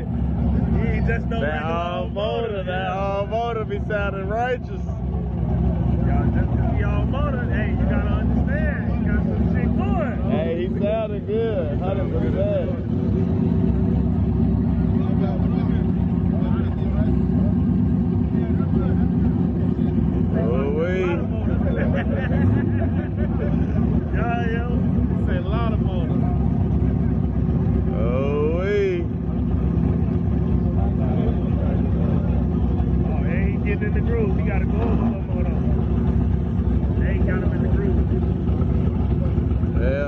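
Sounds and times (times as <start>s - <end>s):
car engine idling: 0.0s - 40.0s
people talking: 0.0s - 40.0s.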